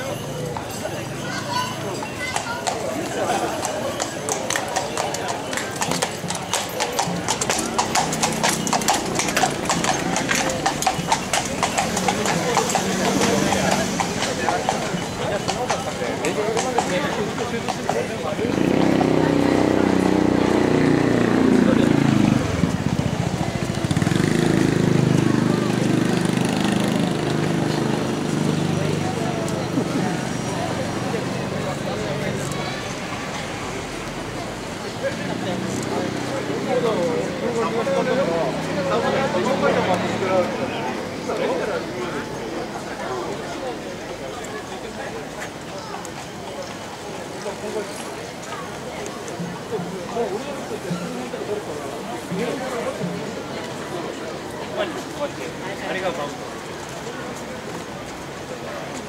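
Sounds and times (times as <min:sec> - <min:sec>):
crowd voices: 0:00.0 - 0:59.0
horse hooves clip-clopping on asphalt: 0:02.2 - 0:18.4.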